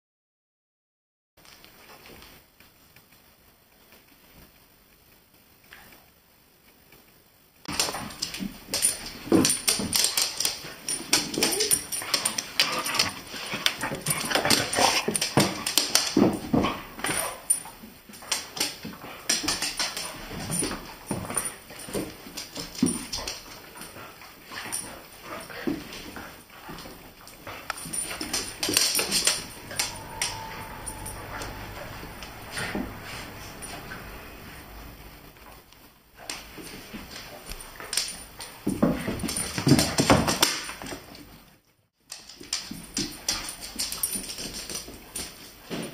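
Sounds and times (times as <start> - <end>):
dogs scuffling: 7.7 - 41.1
dog yips and whines: 29.0 - 34.6.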